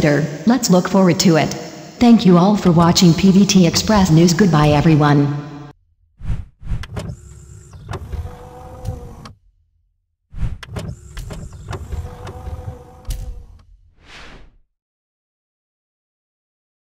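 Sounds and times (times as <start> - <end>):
whoosh rush: 6.2 - 6.8, 14.0 - 14.6
mechanical whirring hum with clicks: 6.2 - 9.5, 10.4 - 13.9.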